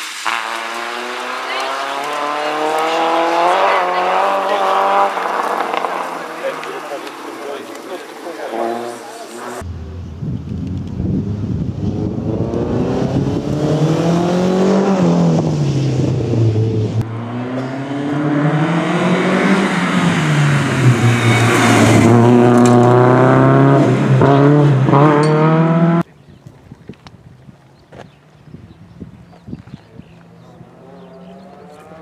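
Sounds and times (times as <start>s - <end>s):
car engine revving hard: 0.2s - 7.0s, 8.4s - 9.6s, 11.1s - 26.0s.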